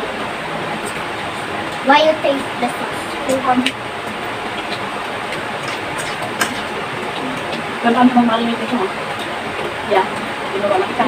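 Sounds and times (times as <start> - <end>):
person speaking: 0.0 - 3.8.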